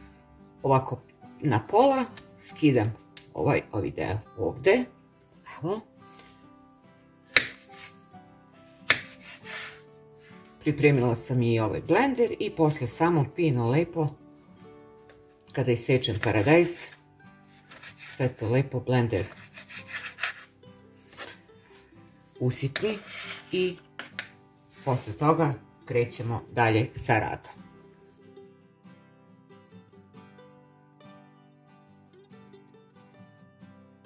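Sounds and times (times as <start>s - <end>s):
soft background music: 0.0s - 34.0s
knife striking cutting board: 7.3s - 7.9s, 8.8s - 9.8s, 17.6s - 18.2s, 19.2s - 20.5s, 24.0s - 24.4s.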